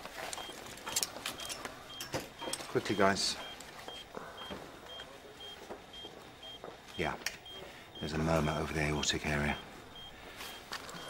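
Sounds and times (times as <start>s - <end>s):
patient monitor beeping: 0.0s - 11.0s.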